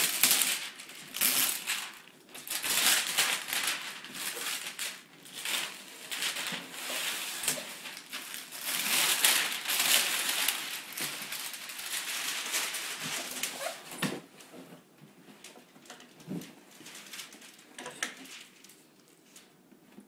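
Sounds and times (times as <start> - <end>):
plastic wrap crinkling: 0.0 - 14.4, 15.4 - 19.5.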